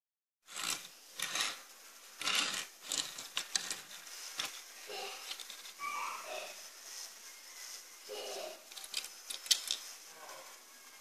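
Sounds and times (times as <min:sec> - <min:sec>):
model car rubbing and scraping: 0:00.5 - 0:06.6.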